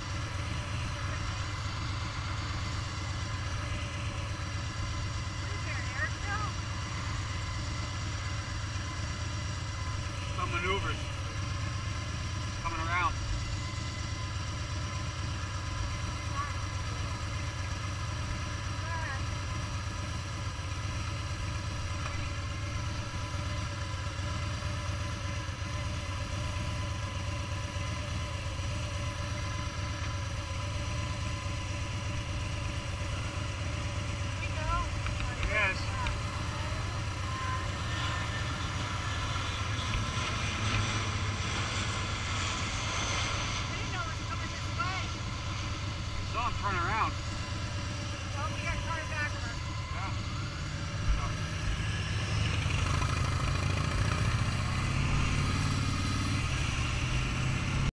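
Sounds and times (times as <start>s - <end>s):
motorcycle engine idling: 0.0s - 57.9s
propeller aircraft passing overhead: 0.0s - 57.9s.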